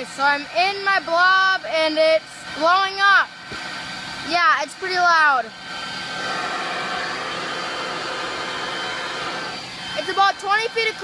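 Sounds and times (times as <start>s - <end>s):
leaf blower rushing air: 0.0s - 11.0s.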